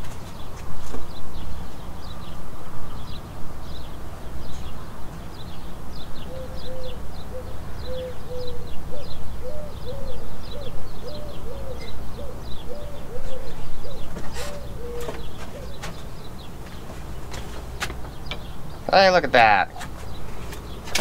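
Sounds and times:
high bird chirps: 0:04.4 - 0:21.0
bird cooing: 0:06.2 - 0:18.4.

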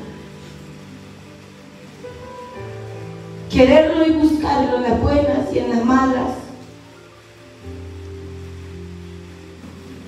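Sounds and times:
soft sustained chord music: 0:00.0 - 0:10.0.

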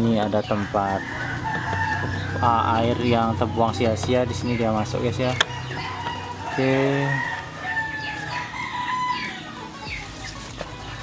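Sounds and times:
roosters crowing: 0:00.0 - 0:11.0.

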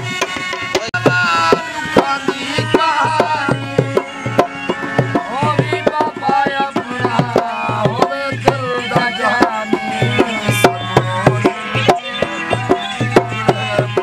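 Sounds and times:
hand drum rhythm: 0:00.0 - 0:14.0
harmonium drone: 0:00.0 - 0:14.0
man singing: 0:00.7 - 0:14.0.

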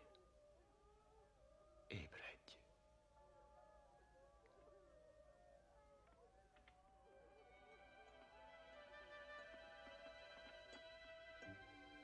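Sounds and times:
faint background music: 0:00.0 - 0:12.0
person whispering: 0:01.9 - 0:02.7.

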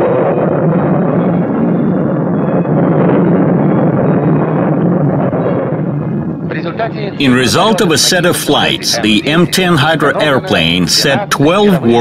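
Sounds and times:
jet engine noise: 0:00.0 - 0:12.0.

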